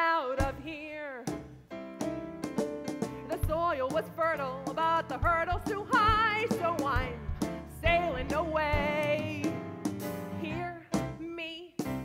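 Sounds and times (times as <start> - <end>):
piano chords: 1.3 - 12.0.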